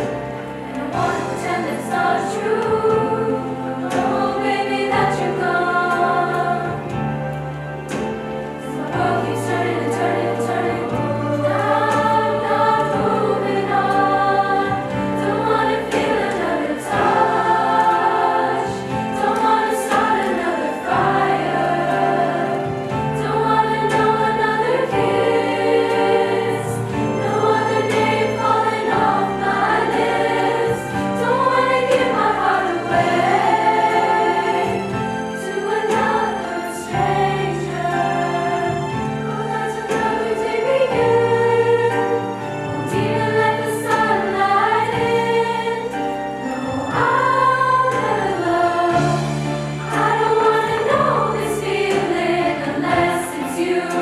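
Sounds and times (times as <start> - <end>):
girls' choir singing: 0.0 - 54.0.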